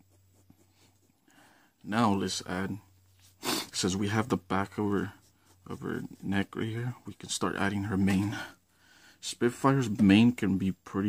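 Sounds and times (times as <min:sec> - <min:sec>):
pencil scratching on paper: 0:00.0 - 0:01.2, 0:03.2 - 0:07.0
low steady hum: 0:00.0 - 0:11.0.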